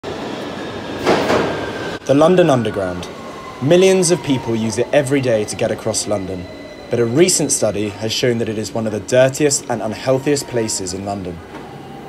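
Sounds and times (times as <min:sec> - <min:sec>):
train rumbling in a tunnel: 0:00.0 - 0:12.0
faint high whine: 0:01.9 - 0:12.0.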